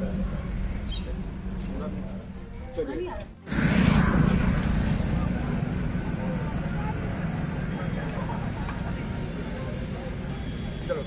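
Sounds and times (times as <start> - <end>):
low outdoor rumble: 0.0 - 10.4
faint crowd voices: 0.0 - 11.0.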